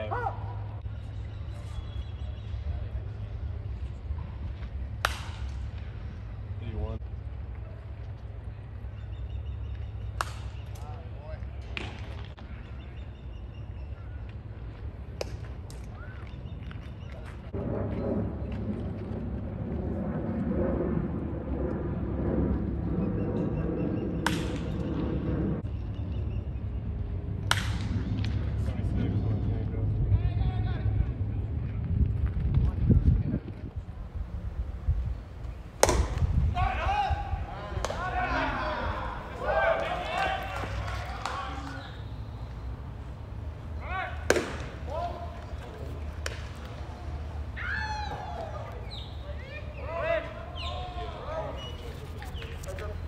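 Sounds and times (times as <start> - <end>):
bat hitting baseball: 5.0 - 5.6, 27.5 - 27.9, 35.5 - 41.9, 44.1 - 46.8
low rumble: 17.5 - 25.8
murmur of spectators: 34.0 - 53.0
sharp cracks: 35.4 - 36.8, 44.1 - 47.0
baseball smacking into mitt: 35.8 - 36.5, 37.8 - 38.1, 44.2 - 44.8, 46.2 - 46.8.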